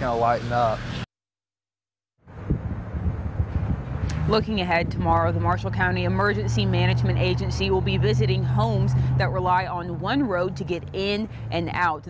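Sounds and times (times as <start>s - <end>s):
wind buffeting microphone: 2.3s - 11.2s.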